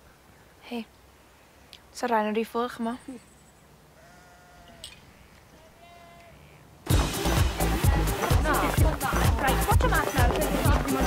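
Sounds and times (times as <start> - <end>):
faint sheep bleating: 4.0 - 6.6.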